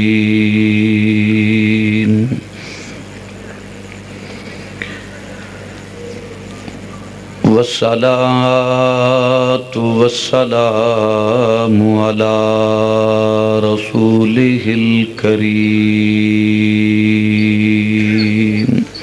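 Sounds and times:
man chanting over microphone: 0.0s - 2.5s, 7.4s - 19.0s.

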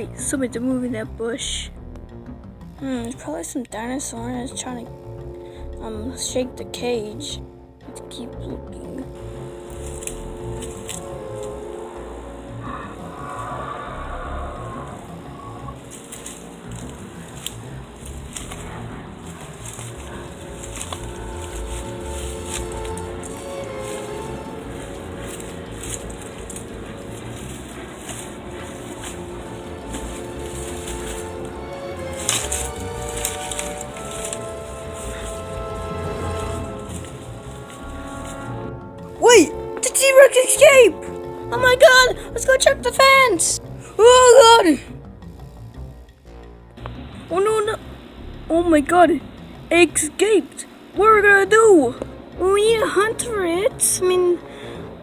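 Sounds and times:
low rumble: 0.0s - 55.0s
music of long held tones: 0.0s - 55.0s.

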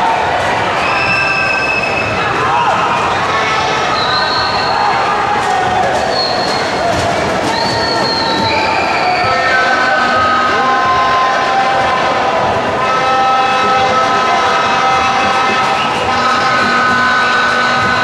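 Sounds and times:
crowd noise: 0.0s - 18.0s
horns blowing long tones: 6.1s - 18.0s.

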